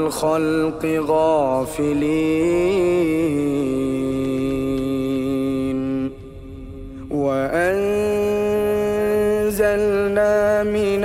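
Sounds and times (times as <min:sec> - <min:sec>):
man chanting melodic recitation: 0:00.0 - 0:11.0.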